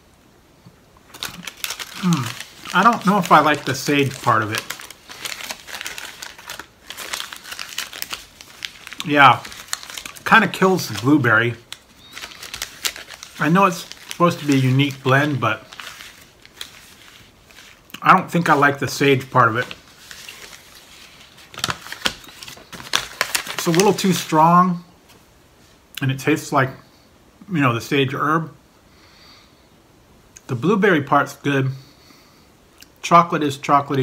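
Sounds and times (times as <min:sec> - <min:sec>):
foil wrapper crinkling: 0:01.0 - 0:24.4.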